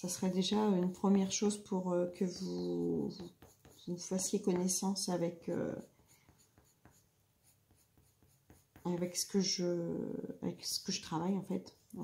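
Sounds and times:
pencil scratching on paper: 0.2 - 9.6.

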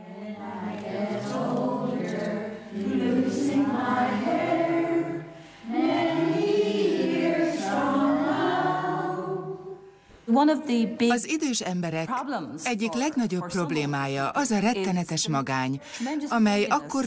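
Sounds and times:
choir singing slow melody: 0.0 - 11.0.

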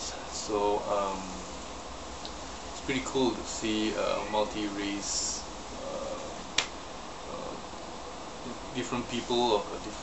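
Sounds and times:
low room hiss: 0.0 - 10.0
sharp click: 6.6 - 6.8.

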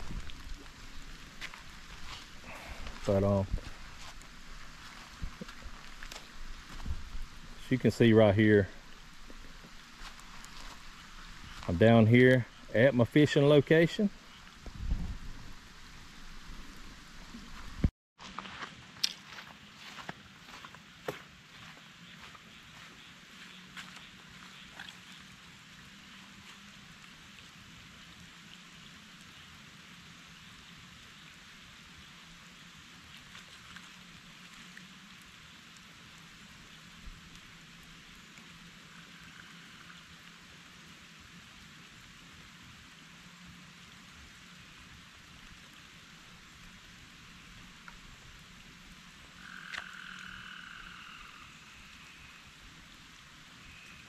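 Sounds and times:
steady high hiss: 0.0 - 17.9, 34.1 - 54.0
frogs calling: 49.3 - 52.6, 53.5 - 54.0.

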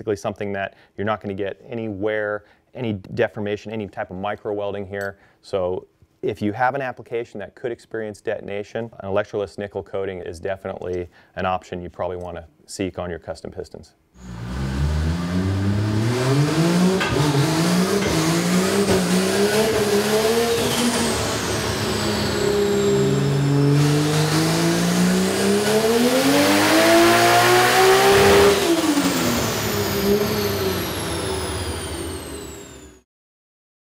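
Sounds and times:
high whine: 14.2 - 32.8
race car engine revving: 14.2 - 32.8.

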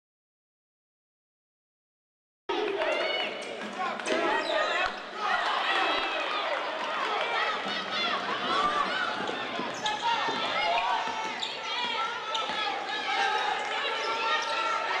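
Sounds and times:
voices calling out: 2.5 - 15.0
sneakers squeaking: 2.9 - 5.1, 6.5 - 15.0.

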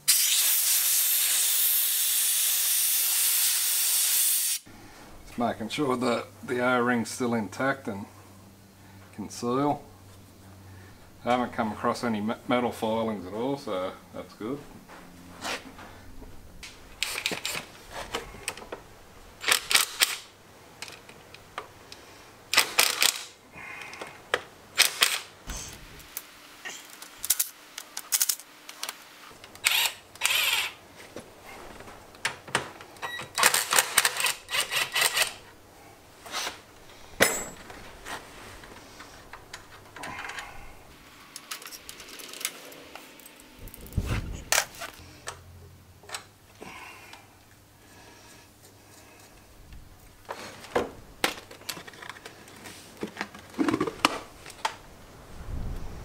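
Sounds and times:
cordless drill unscrewing screws: 29.6 - 30.8, 33.4 - 35.4.

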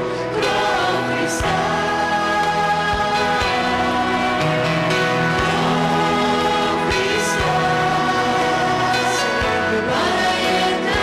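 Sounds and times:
acoustic guitar: 0.0 - 11.0
people singing worship song: 0.0 - 11.0.

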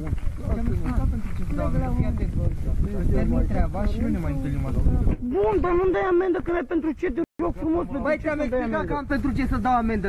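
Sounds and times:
man arguing loudly: 3.1 - 10.0.

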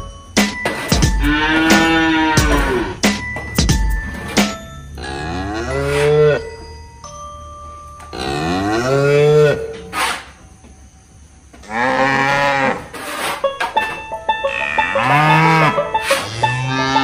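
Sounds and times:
cow mooing: 1.2 - 3.0, 5.0 - 6.5, 8.1 - 9.8, 11.6 - 13.0, 14.4 - 17.0.

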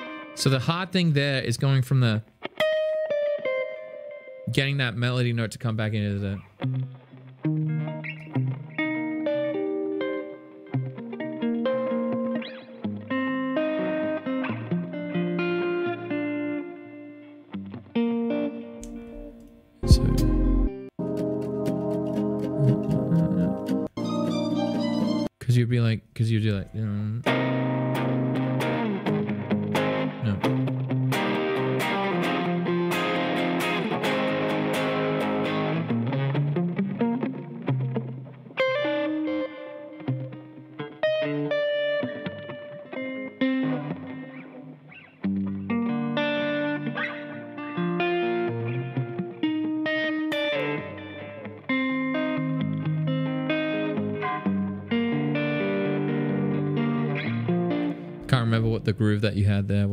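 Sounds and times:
electric guitar playing: 0.0 - 1.4, 2.3 - 5.2, 6.4 - 25.4, 26.6 - 58.9.

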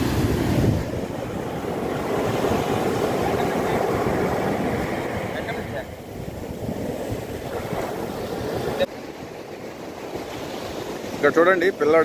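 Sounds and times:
wind noise on microphone: 0.0 - 8.9
surf washing up a sandy beach: 0.0 - 12.0.

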